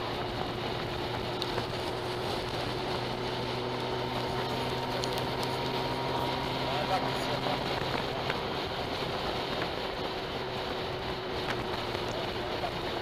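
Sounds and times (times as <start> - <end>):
faint engine hum: 0.0 - 13.0
motorcycle road noise: 0.0 - 13.0
wind rush: 0.0 - 13.0.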